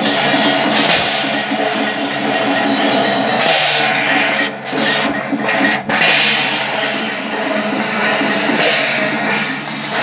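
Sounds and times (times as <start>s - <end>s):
cymbals clashing: 0.0s - 4.4s
drums beating: 0.0s - 10.0s.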